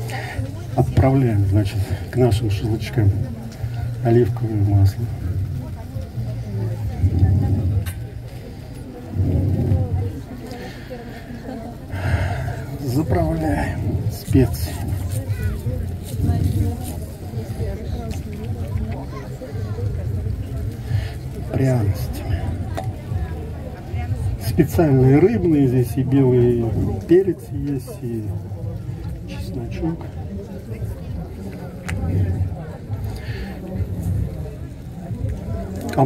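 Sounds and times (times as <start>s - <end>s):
low room rumble: 0.0s - 18.1s
murmur of voices: 0.0s - 36.0s
people talking in an audience: 0.0s - 36.0s.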